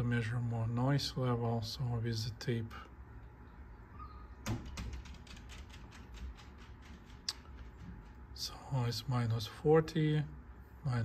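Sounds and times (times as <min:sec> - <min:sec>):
low steady hum: 0:00.0 - 0:11.0
quick run of light clicks: 0:04.4 - 0:08.5.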